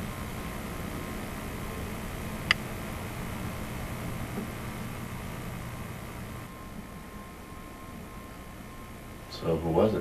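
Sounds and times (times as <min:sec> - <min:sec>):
low hum and hiss: 0:00.0 - 0:10.0
faint high steady tone: 0:04.7 - 0:10.0.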